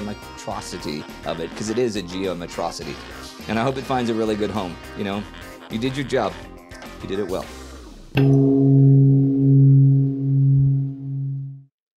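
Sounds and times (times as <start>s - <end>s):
low bell-like struck tone: 8.2s - 11.7s.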